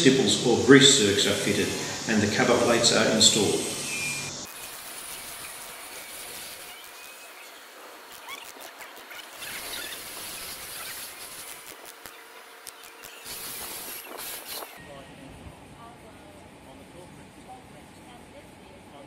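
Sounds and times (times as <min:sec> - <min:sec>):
low steady hiss: 0:00.0 - 0:04.4.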